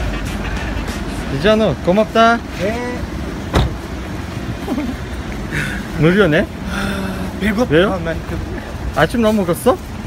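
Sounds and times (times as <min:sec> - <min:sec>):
street traffic rumble: 0:00.0 - 0:10.0
car door shutting: 0:03.4 - 0:03.8.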